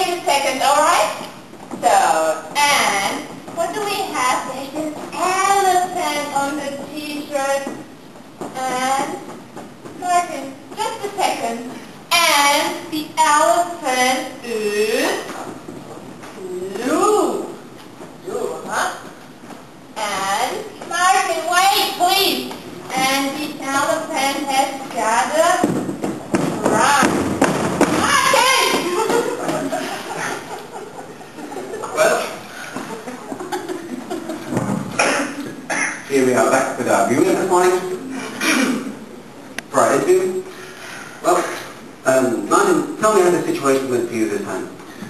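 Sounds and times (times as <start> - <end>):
person coughing: 35.0 - 36.0, 38.3 - 38.9.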